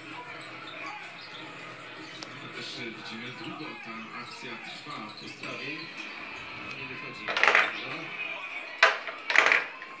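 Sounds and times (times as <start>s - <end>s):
ball clacking on toy pool table: 7.3s - 7.8s, 8.8s - 9.8s.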